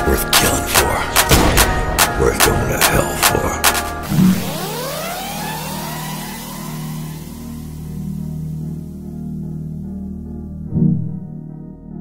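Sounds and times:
rising whine of climbing tones: 0:04.1 - 0:08.8.

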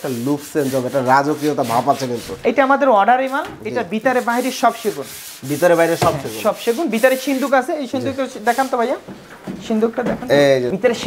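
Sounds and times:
cloth squeaking on polished wood: 0:00.0 - 0:11.0.

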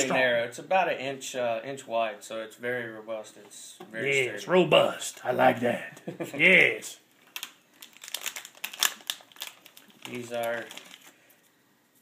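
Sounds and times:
plastic bag crinkling: 0:07.2 - 0:11.5.

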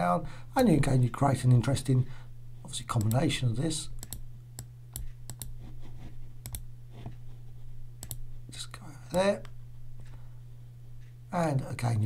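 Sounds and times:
steady low hum: 0:00.0 - 0:12.0
computer mouse clicks: 0:03.0 - 0:03.2, 0:04.0 - 0:05.6, 0:06.4 - 0:07.2, 0:08.0 - 0:08.2.

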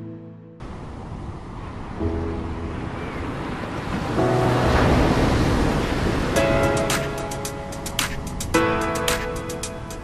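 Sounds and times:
ocean wave crashing: 0:00.7 - 0:09.4
music with held tones: 0:06.3 - 0:10.0.

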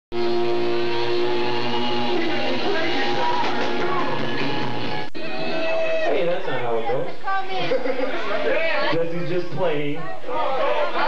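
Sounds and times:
electric guitar ringing notes: 0:00.1 - 0:05.1.

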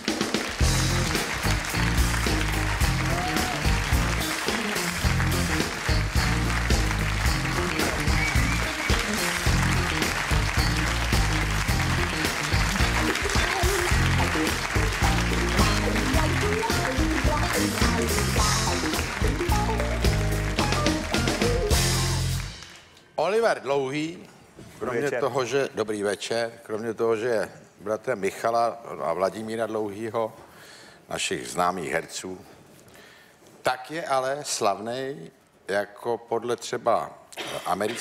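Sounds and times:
audience applause: 0:00.0 - 0:22.8
live band playing upbeat tune: 0:00.0 - 0:22.8.

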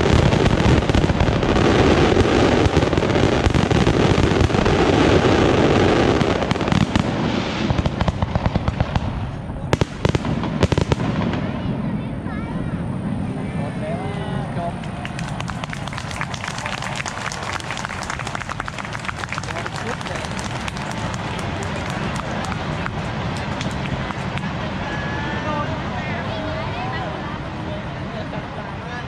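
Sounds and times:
firework fountains crackling: 0:00.0 - 0:29.0
spectators talking and murmuring: 0:00.0 - 0:29.0.

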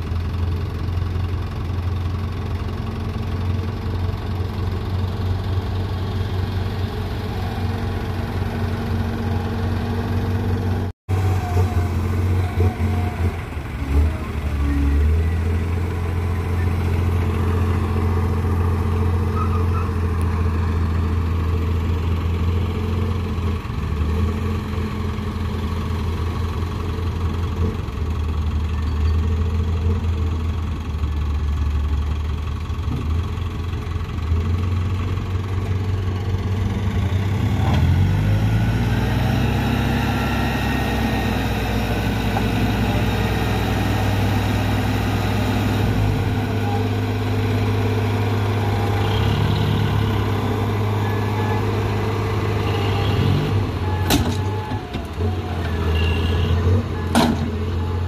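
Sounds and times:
diesel truck engine idling and revving: 0:00.0 - 0:58.0.

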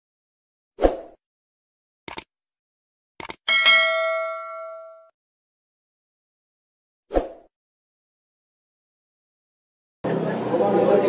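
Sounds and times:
notification bell ding: 0:03.5 - 0:05.1.

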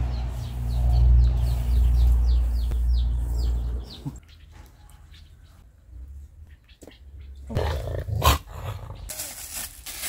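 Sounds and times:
plastic gloves crinkling: 0:09.1 - 0:10.0.

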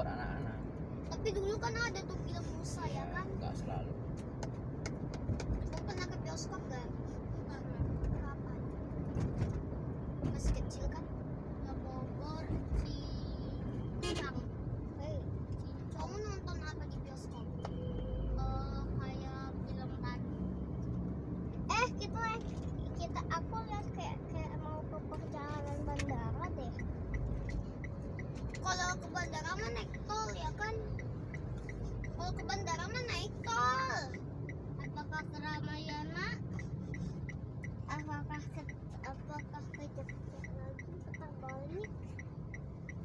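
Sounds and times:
car road and engine rumble: 0:00.0 - 0:43.0
people talking: 0:05.7 - 0:08.6, 0:10.2 - 0:11.0, 0:11.6 - 0:14.4, 0:21.7 - 0:26.8, 0:32.1 - 0:34.2, 0:37.9 - 0:42.0.

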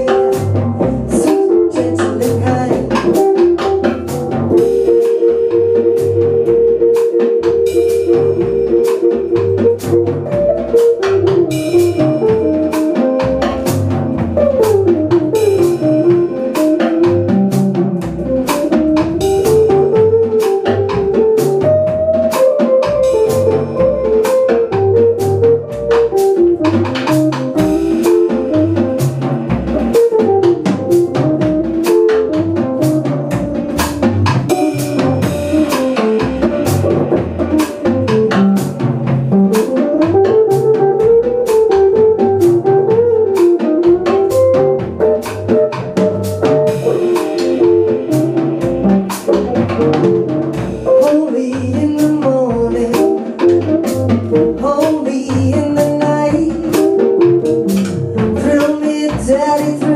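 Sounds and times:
drum kit beat: 0:00.0 - 0:59.9
electric guitar: 0:00.0 - 0:59.9
upright double bass: 0:00.0 - 0:59.9.

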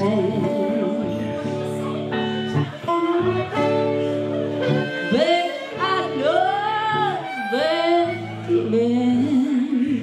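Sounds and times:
band playing: 0:00.0 - 0:09.6
electric guitar: 0:00.0 - 0:10.0
woman singing blues: 0:00.0 - 0:10.0.

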